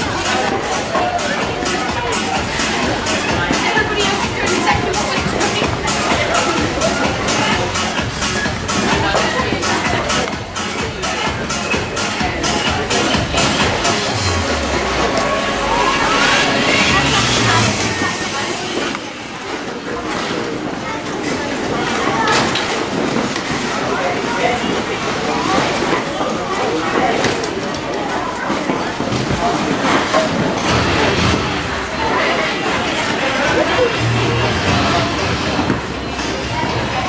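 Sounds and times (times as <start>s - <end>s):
dance music: 0.0s - 18.8s, 30.6s - 37.0s
people chattering: 0.0s - 37.0s
rising pitch sweep: 14.0s - 18.6s.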